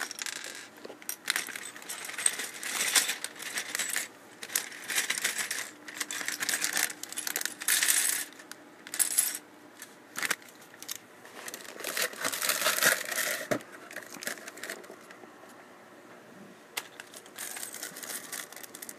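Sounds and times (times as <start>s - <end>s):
plastic pieces clattering: 0.0s - 9.4s, 10.2s - 15.1s, 16.8s - 18.9s
plastic bag crinkling: 11.3s - 14.9s, 17.0s - 18.9s.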